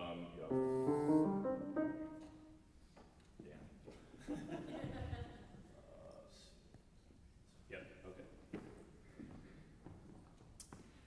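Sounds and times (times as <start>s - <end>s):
soft piano chords: 0.4s - 2.7s.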